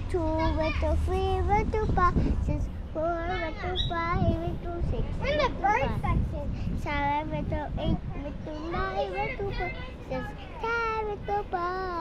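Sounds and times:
child singing: 0.0s - 12.0s.

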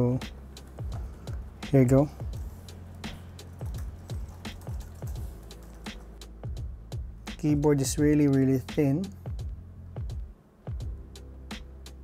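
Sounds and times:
background music with bass beat: 0.0s - 12.0s.

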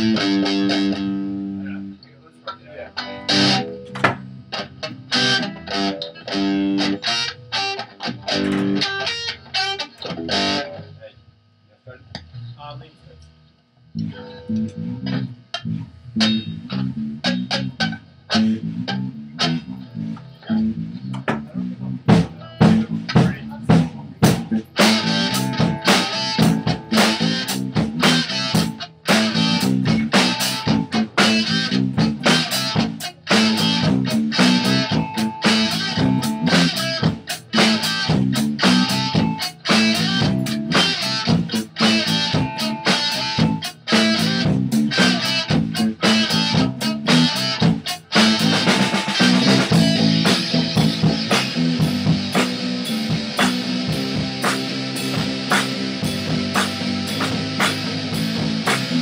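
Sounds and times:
bass guitar: 0.0s - 11.2s, 13.9s - 59.0s
guitar: 0.0s - 59.0s
drum kit: 3.3s - 5.5s, 8.1s - 9.1s, 14.2s - 59.0s.

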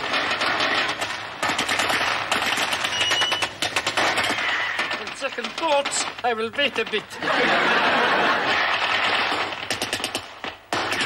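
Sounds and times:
rapid machine-gun fire: 0.0s - 11.0s.

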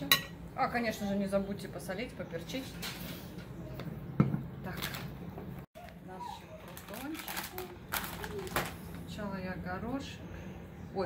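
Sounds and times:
plastic bag rustling: 5.8s - 9.2s.

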